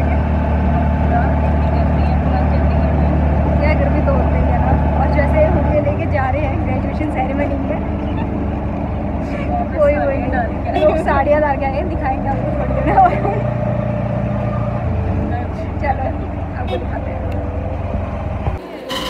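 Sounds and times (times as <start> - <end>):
auto-rickshaw engine drone: 0.0 - 19.0.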